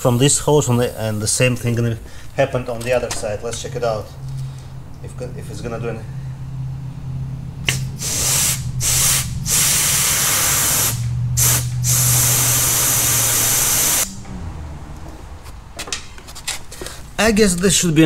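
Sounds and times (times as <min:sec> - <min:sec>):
compressed air hissing: 0:07.6 - 0:14.2.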